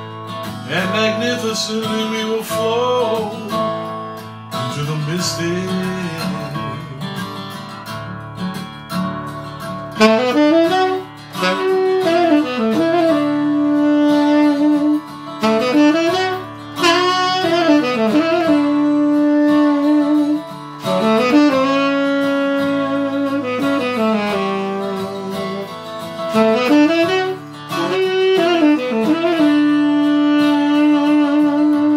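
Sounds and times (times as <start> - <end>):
saxophone solo: 0.0 - 7.8, 9.2 - 31.9
guitar backing track: 0.0 - 31.9.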